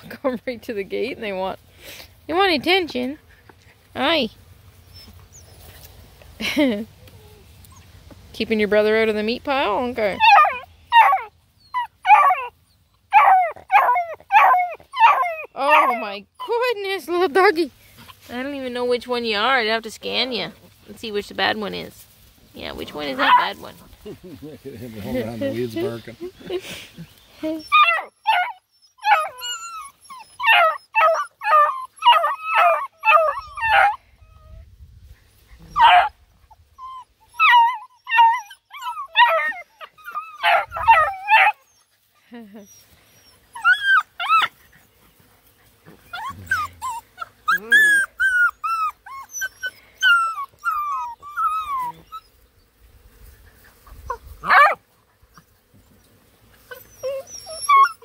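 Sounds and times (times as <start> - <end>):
puppies yelping: 10.0 - 17.0, 22.7 - 23.9, 27.6 - 34.4, 35.6 - 41.9, 42.6 - 45.0, 45.7 - 52.5, 53.7 - 54.8, 56.6 - 58.0.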